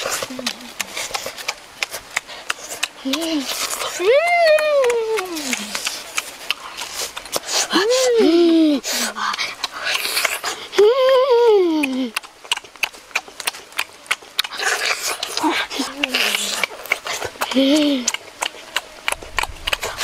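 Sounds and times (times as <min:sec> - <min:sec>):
wet lip-smacking and chewing: 0:00.0 - 0:20.0
boy humming with relish: 0:04.0 - 0:05.8, 0:10.7 - 0:12.2.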